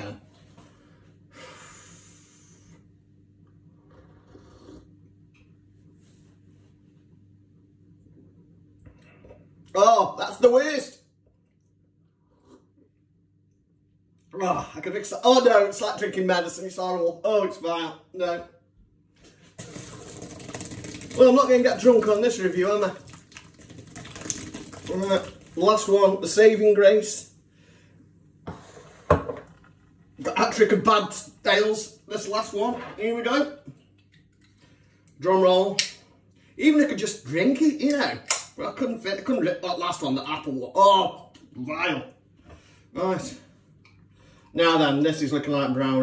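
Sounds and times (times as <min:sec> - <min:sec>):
person sniffing through the nose: 0:03.9 - 0:04.9
beer pouring into a steel sink: 0:19.6 - 0:26.4.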